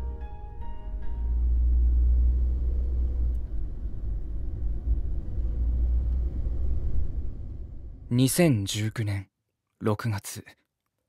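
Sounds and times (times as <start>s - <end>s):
car engine and road noise: 0.0s - 8.1s.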